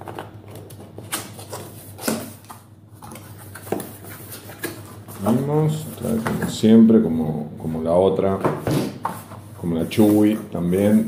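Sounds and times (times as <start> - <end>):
cardboard rustling and scraping: 0.0 - 6.6, 8.5 - 11.0.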